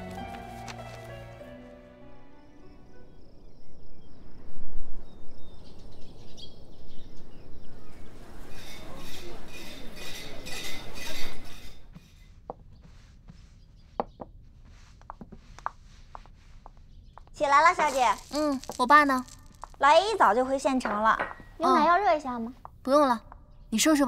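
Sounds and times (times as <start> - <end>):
dense chatter of birds: 5.2 - 11.3
plates and cutlery clinking: 8.6 - 12.0
birds chirping: 16.0 - 24.0.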